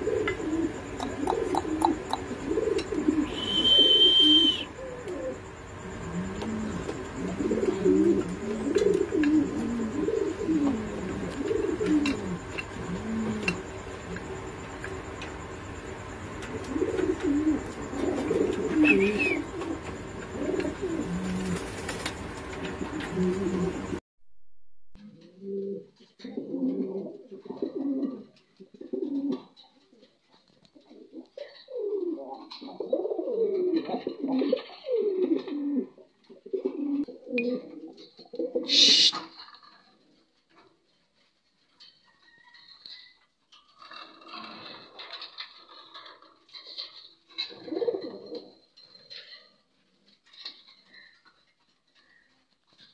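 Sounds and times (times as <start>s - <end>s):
pigeons cooing: 0.0s - 24.0s, 25.0s - 52.9s
loud hissing burst: 38.7s - 39.2s.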